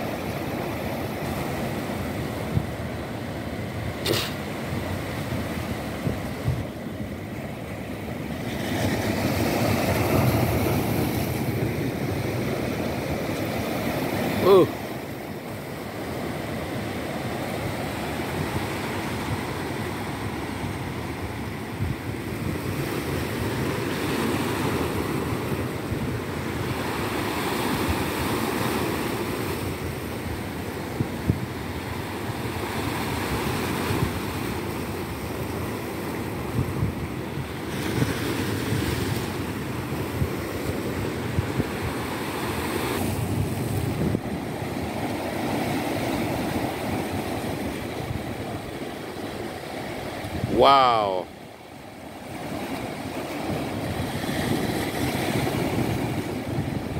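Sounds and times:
ocean surf breaking: 0.0s - 56.9s
wind buffeting microphone: 1.9s - 14.1s, 17.3s - 28.4s, 29.7s - 50.6s, 52.2s - 56.9s.

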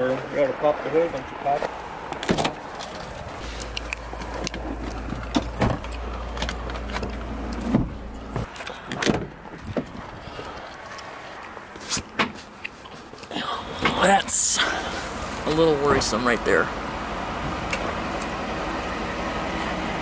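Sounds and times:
knocks and clunks: 4.2s - 10.2s.

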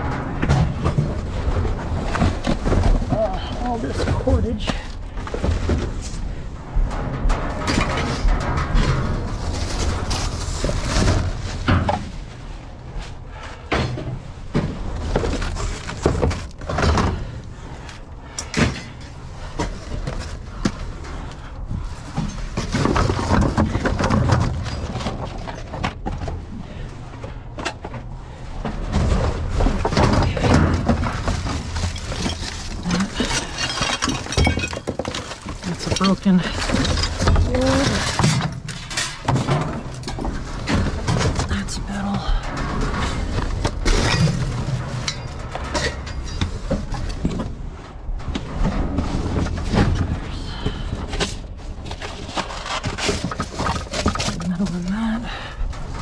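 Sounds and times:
objects knocking and clattering: 0.0s - 56.0s
cardboard scraping and crumpling: 14.6s - 17.3s, 48.3s - 55.4s.

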